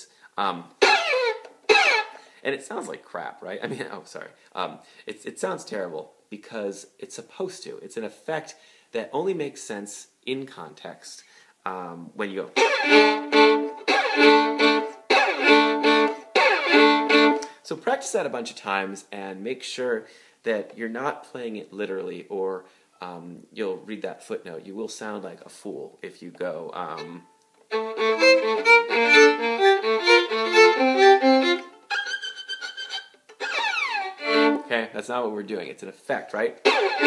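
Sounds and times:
solo violin double stops: 0.8s - 2.3s, 12.6s - 17.6s, 27.0s - 34.7s, 36.6s - 37.0s.

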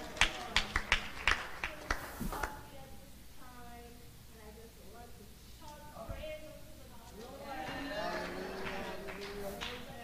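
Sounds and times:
sharp irregular hand claps: 0.0s - 2.6s.

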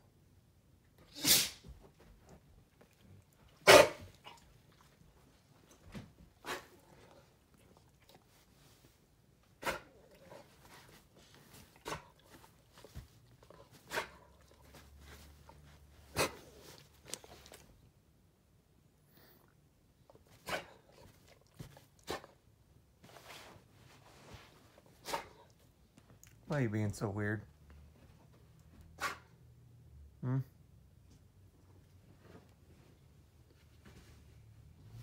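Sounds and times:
dog barking sharply: 3.6s - 4.1s, 9.6s - 9.9s, 29.0s - 29.3s.

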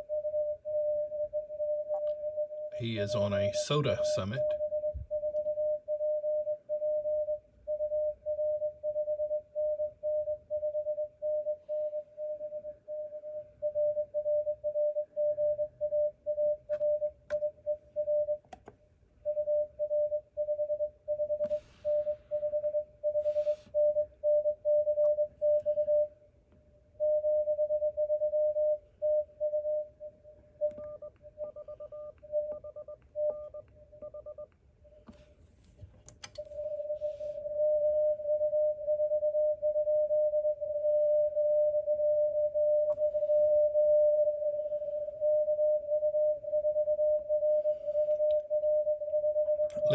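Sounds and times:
morse code tone: 0.0s - 18.4s, 19.2s - 26.1s, 27.0s - 34.5s, 36.4s - 49.9s.

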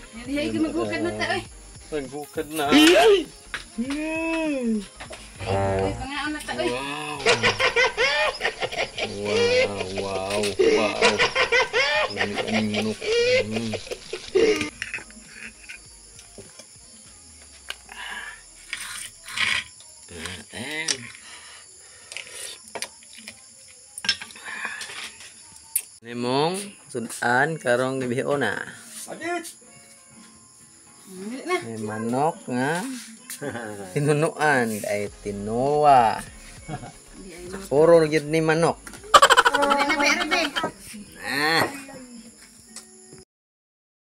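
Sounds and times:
person speaking: 0.3s - 1.5s, 5.4s - 7.7s, 9.0s - 11.3s, 12.1s - 13.8s.

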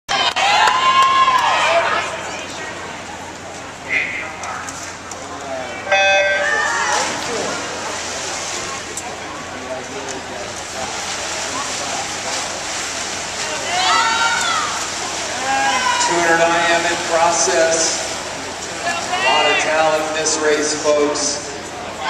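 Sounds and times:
spectators shouting: 0.1s - 2.8s, 5.8s - 7.8s, 13.4s - 17.7s, 18.5s - 20.1s
splashing water: 6.6s - 20.1s.

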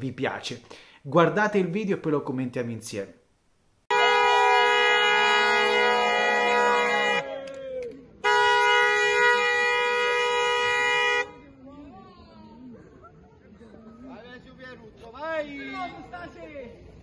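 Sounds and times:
loud air horn blasts: 3.9s - 7.4s, 8.2s - 11.4s.

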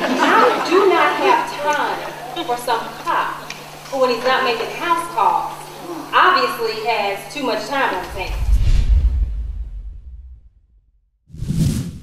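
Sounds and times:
whoosh transition effect: 8.0s - 12.0s.

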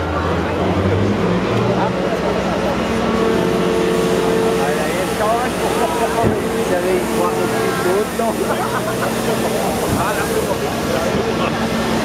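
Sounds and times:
people talking: 0.0s - 12.0s
machinery hum: 0.1s - 12.0s.

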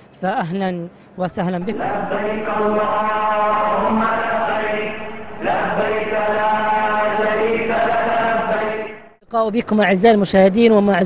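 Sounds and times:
person chanting: 1.6s - 9.2s.

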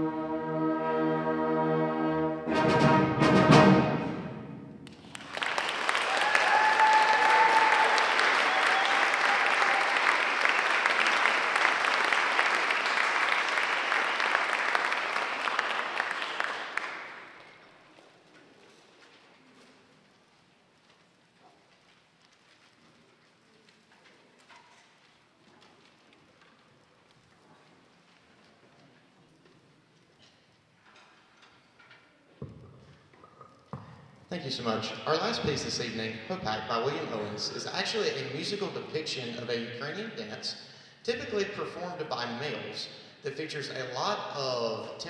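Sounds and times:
brass chord: 0.0s - 4.8s
audience applause: 4.8s - 17.7s
short cheers: 5.6s - 12.7s.

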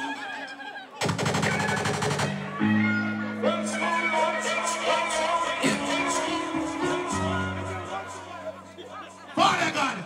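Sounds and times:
crowd noise: 0.0s - 10.0s
machine-gun sound effect: 1.0s - 2.4s.

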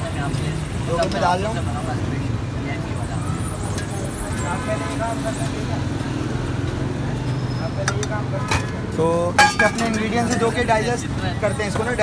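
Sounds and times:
street and traffic hum: 0.0s - 12.0s
metal spoon clicking on clay pots: 7.8s - 10.5s.

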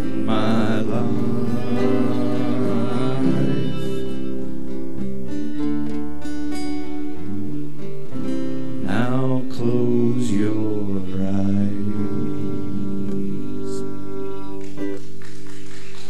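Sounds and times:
fiddle melody: 0.0s - 15.0s
strummed acoustic guitars: 0.0s - 16.0s.

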